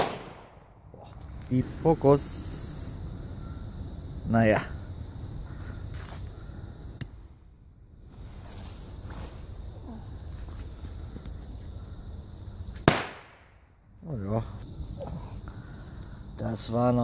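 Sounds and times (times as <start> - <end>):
firecracker bang: 0.0 - 0.8, 12.8 - 13.6.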